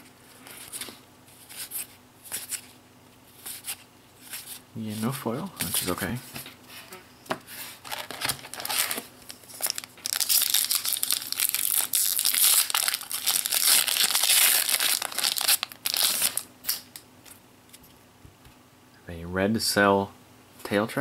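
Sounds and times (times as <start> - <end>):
foil wrapper crinkling: 7.8 - 17.0.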